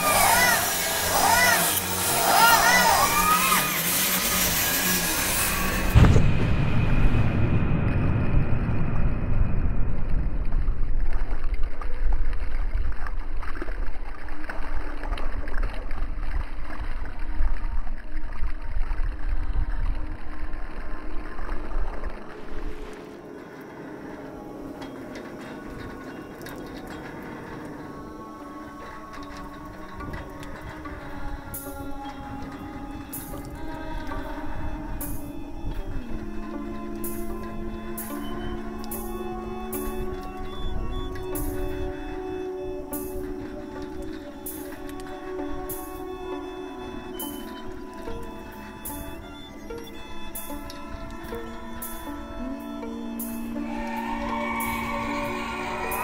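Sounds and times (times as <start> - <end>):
drone of held tones: 0.0 - 11.0, 22.6 - 56.0
muffled low rumble: 5.6 - 25.2
sudden thud: 6.0 - 8.4.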